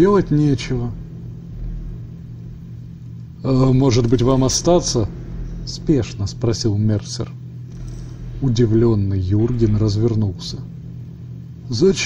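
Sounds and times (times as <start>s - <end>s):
constant low hum: 0.0s - 12.0s
low rumble: 0.0s - 12.0s.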